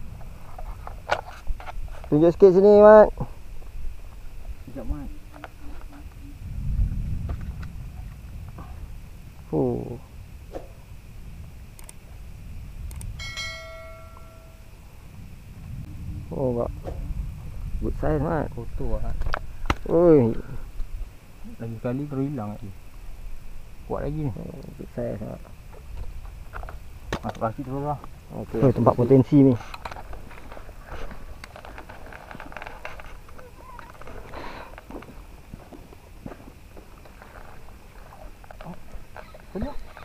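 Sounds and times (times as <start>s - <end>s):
bright bell chime: 13.2s - 14.8s
fishing tackle clicking and rustling: 29.5s - 35.1s.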